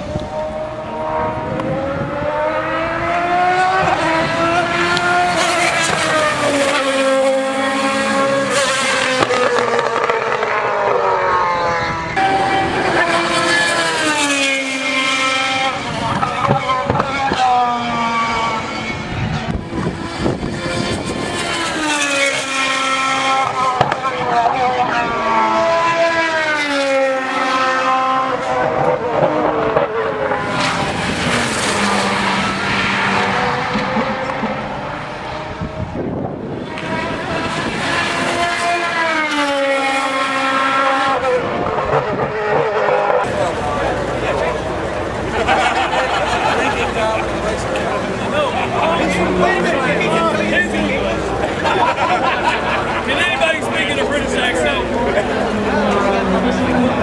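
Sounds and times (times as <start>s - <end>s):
race cars passing: 0.0s - 57.0s.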